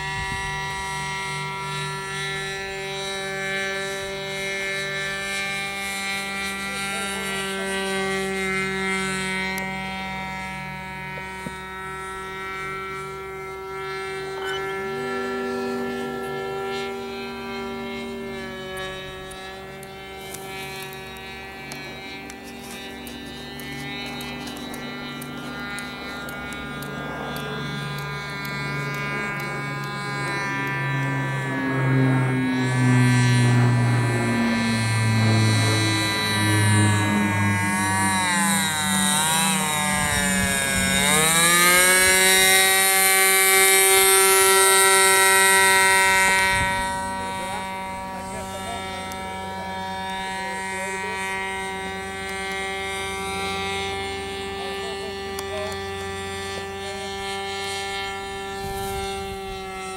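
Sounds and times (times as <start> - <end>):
model plane motor whining: 0.0 - 59.9.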